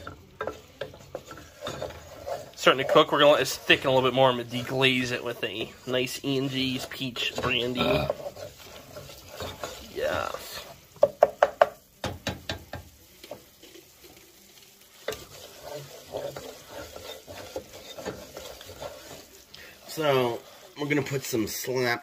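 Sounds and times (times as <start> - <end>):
wooden spoon scraping saucepan: 0.0 - 11.8, 12.5 - 22.0
roux sizzling faintly: 0.0 - 22.0.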